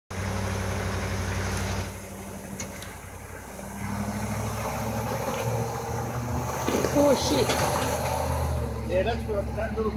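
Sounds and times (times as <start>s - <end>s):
truck engine under load: 0.1s - 9.9s.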